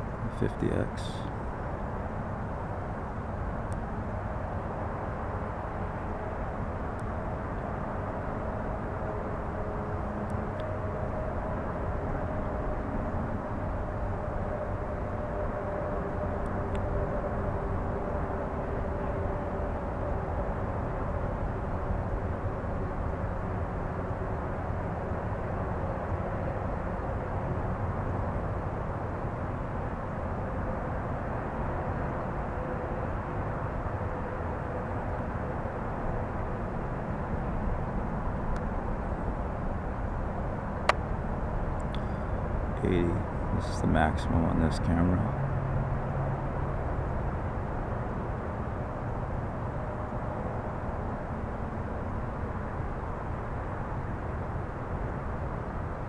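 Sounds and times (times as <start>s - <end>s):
faint humming tones: 0.0s - 56.0s
distant engine rumble: 38.3s - 47.5s.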